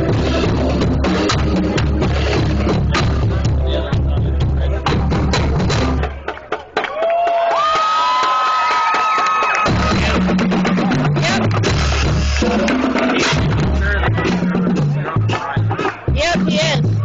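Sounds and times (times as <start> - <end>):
sousaphone bass line: 0.0 - 6.2, 9.7 - 17.0
marching band playing: 0.0 - 7.1, 9.4 - 17.0
drums: 0.0 - 17.0.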